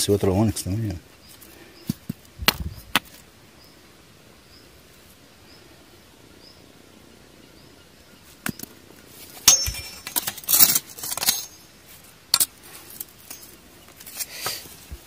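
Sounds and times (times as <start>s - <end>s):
stones and machete knocking: 1.8s - 3.1s, 9.4s - 11.6s.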